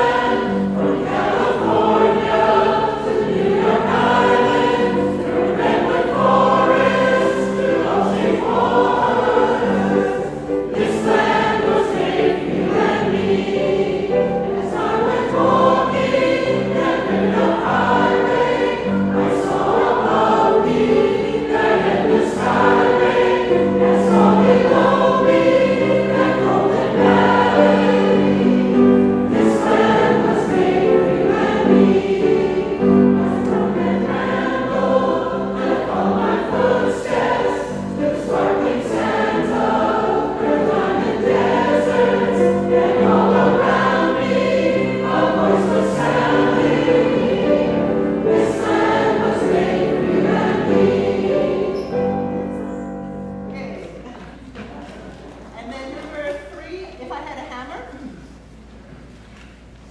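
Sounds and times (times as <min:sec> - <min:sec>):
mixed choir singing: 0:00.0 - 0:54.8.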